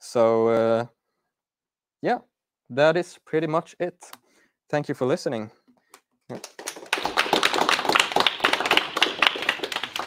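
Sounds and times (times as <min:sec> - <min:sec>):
audience applauding: 0:06.3 - 0:10.0.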